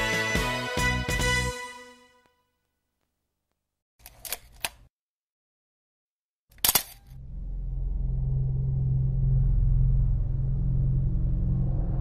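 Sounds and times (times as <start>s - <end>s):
low rumbling drone: 7.2s - 12.0s.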